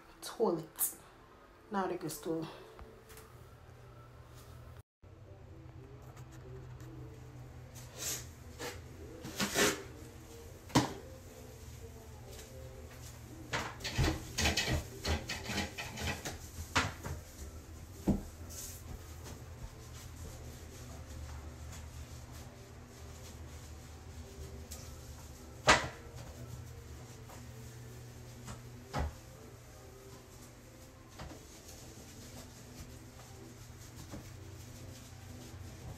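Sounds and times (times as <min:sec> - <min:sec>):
knocks and clatter of toilet cleaning: 0:13.5 - 0:19.4, 0:25.6 - 0:26.4, 0:28.4 - 0:29.2.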